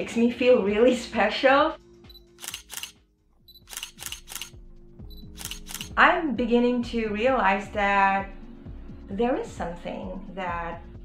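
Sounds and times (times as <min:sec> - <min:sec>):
quiet background music: 0:00.0 - 0:11.0
camera shutter clicking: 0:02.3 - 0:03.0, 0:03.6 - 0:04.6, 0:05.3 - 0:06.0.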